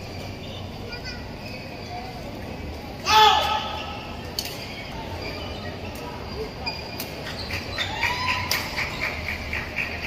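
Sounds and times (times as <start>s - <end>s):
shoes squeaking on court floor: 0.0s - 3.0s, 4.1s - 9.2s.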